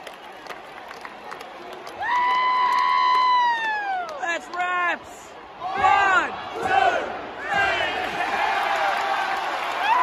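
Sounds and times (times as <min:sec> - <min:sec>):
arena crowd: 0:00.0 - 0:10.0.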